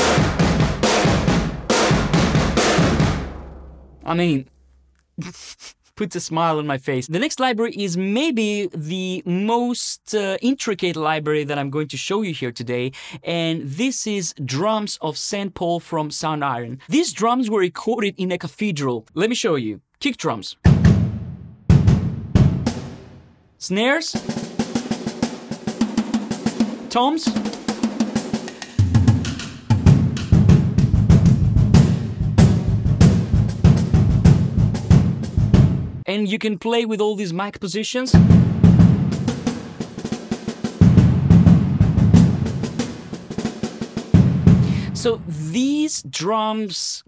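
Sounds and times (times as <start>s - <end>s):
snare drum rolls: 0.0s - 3.4s, 20.6s - 23.2s, 24.1s - 36.0s, 38.1s - 44.6s
tom and kick drum hits: 0.0s - 4.0s, 20.6s - 23.2s, 28.9s - 36.0s, 38.2s - 40.0s, 40.8s - 44.8s
reverberant kick drum hits: 20.7s - 23.2s, 38.2s - 39.9s, 44.2s - 44.6s.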